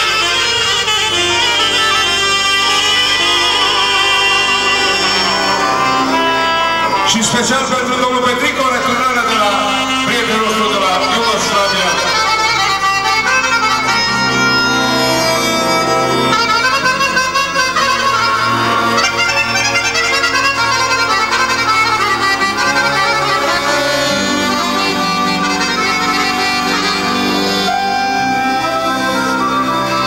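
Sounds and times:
accordion folk melody: 0:00.0 - 0:30.0
sustained low bass notes: 0:00.9 - 0:13.1.

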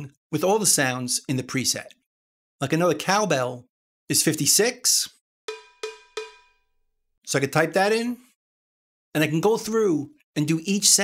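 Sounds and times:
cowbell hits ringing briefly: 0:05.5 - 0:06.7.

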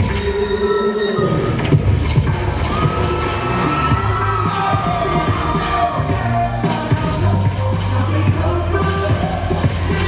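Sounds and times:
loud hip hop music: 0:00.0 - 0:10.0
audience cheering and shouting: 0:02.4 - 0:10.0.

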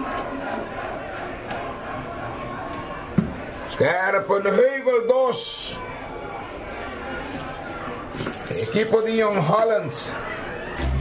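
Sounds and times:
crowd cheering and shouting: 0:00.0 - 0:08.1, 0:08.7 - 0:11.0.

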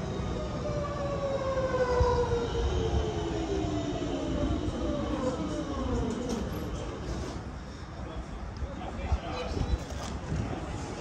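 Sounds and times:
train running gear rumble: 0:04.8 - 0:07.6.

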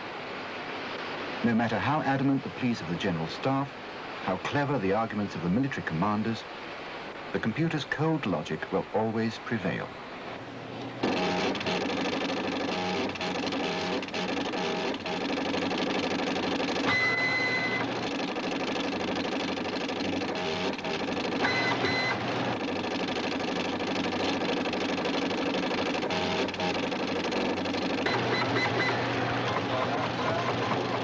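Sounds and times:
fast mechanical printer clatter: 0:11.0 - 0:31.0
high electronic beep: 0:16.9 - 0:17.9, 0:21.4 - 0:22.2, 0:28.0 - 0:29.0.

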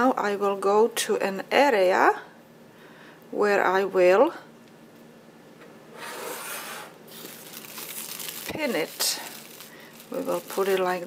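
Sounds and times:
plastic bag rustling: 0:07.1 - 0:11.0.

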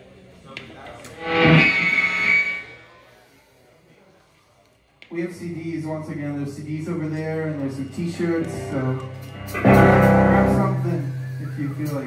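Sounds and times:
distorted electric guitar chord: 0:01.2 - 0:02.4, 0:08.4 - 0:11.2.

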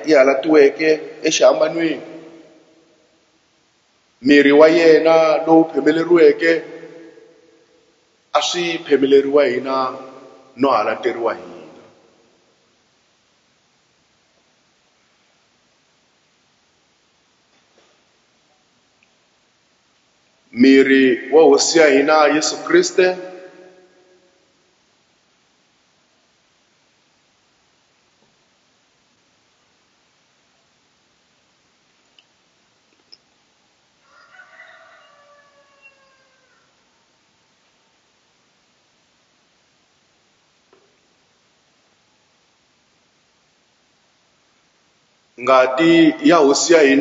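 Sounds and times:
man's voice: 0:00.0 - 0:02.2, 0:04.2 - 0:07.0, 0:08.4 - 0:11.9, 0:20.6 - 0:23.6, 0:45.4 - 0:47.0
rooster crowing: 0:34.0 - 0:37.2.

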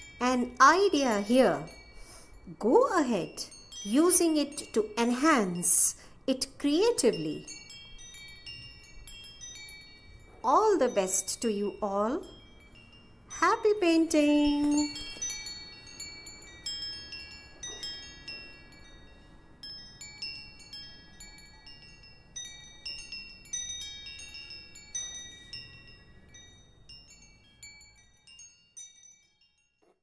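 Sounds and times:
wind chimes tinkling: 0:00.0 - 0:29.9.

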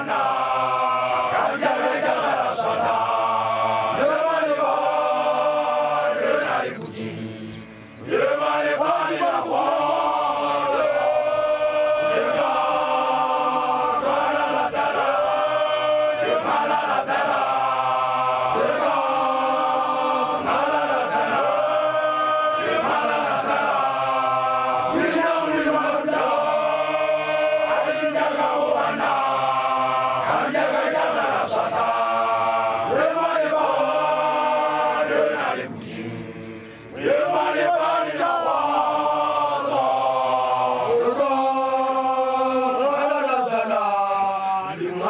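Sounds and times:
group of young people chanting: 0:00.0 - 0:45.0.

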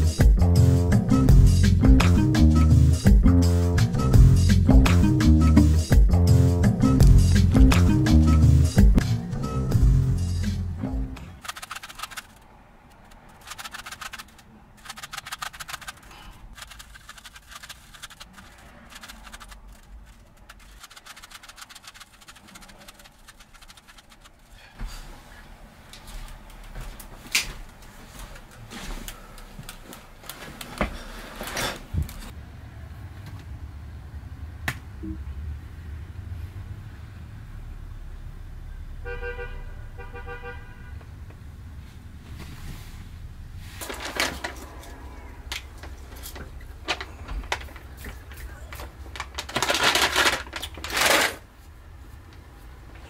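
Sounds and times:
puzzle cube clicking and scraping: 0:11.2 - 0:24.5.

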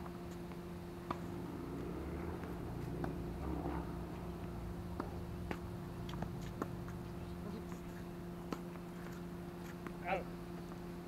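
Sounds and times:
steady low hum: 0:00.0 - 0:11.0
tennis balls hit and bouncing: 0:00.5 - 0:10.0.

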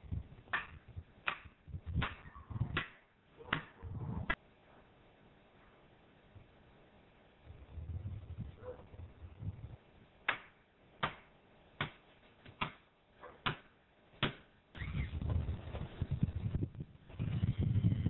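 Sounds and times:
hammer striking wooden stake: 0:00.5 - 0:02.2, 0:10.3 - 0:12.8, 0:13.4 - 0:14.5.

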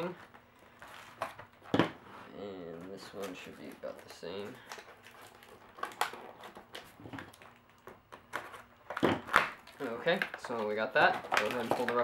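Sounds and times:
cardboard and tape rustling: 0:02.4 - 0:12.0.

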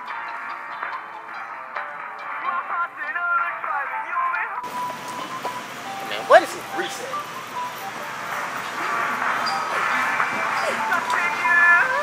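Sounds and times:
faint tinny background music: 0:00.0 - 0:12.0
indistinct voices: 0:04.6 - 0:12.0
steady background hiss: 0:04.6 - 0:12.0.

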